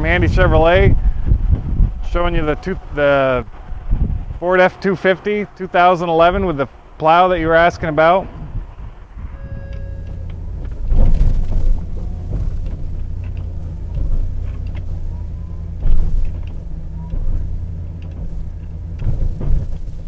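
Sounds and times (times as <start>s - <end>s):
hydraulic pump running: 0.0s - 20.0s
truck engine idling: 0.0s - 20.0s.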